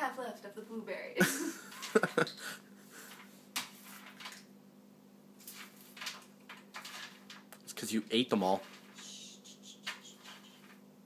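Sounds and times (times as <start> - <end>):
clicks and rustles of hands: 3.0 - 4.5, 5.4 - 7.7, 8.5 - 10.8
steady low hum: 7.2 - 11.0.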